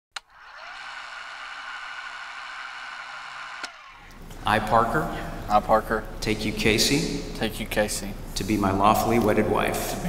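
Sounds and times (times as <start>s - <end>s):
small motor whirring: 0.2s - 4.4s.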